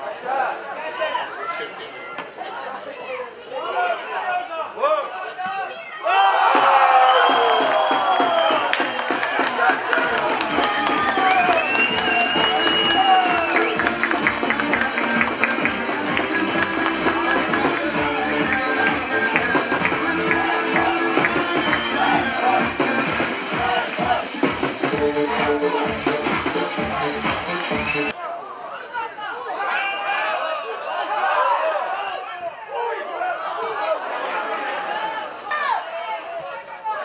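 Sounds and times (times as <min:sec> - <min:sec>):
crowd shouting and cheering: 0:00.0 - 0:37.0
music with steady beat: 0:07.6 - 0:28.1.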